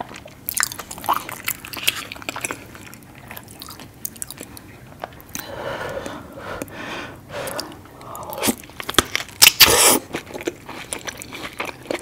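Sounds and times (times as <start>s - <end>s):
wet chewing: 0.0s - 5.5s, 7.4s - 12.0s.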